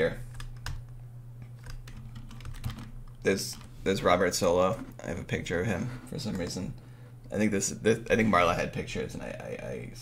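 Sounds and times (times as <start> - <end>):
low steady hum: 0.0 - 10.0
keyboard keystrokes: 1.6 - 2.9.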